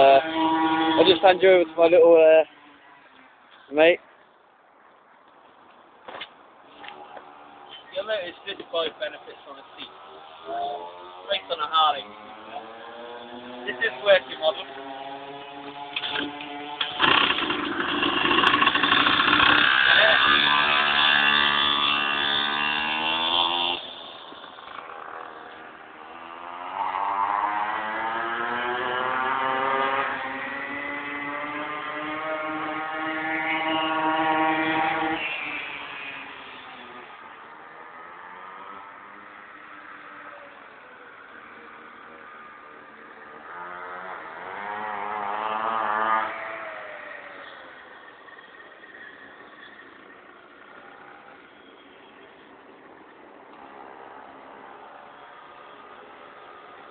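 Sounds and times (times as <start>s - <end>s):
small engine revving: 0.0s - 1.8s, 12.1s - 37.1s, 43.4s - 50.0s.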